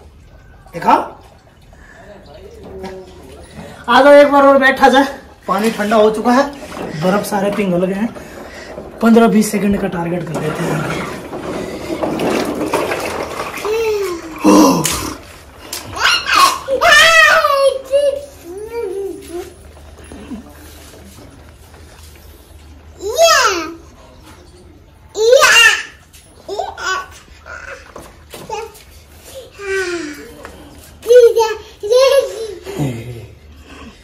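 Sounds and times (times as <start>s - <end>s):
ice water sloshing in plastic drum: 5.5s - 14.4s.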